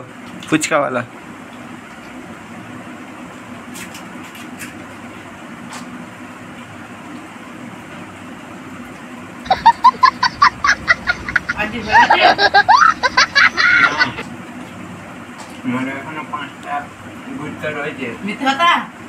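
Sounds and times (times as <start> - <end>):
child laughing hysterically: 9.5 - 14.2.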